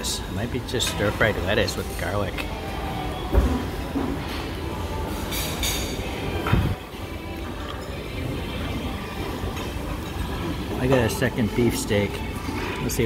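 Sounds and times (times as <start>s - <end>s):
hum of diners' voices: 0.0s - 13.0s
tableware clinking: 3.5s - 6.8s.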